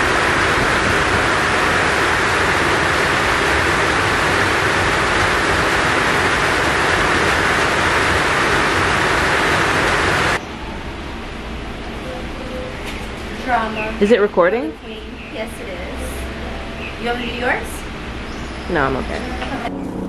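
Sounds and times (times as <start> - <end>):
heavy rain on a metal roof: 0.0 - 15.0.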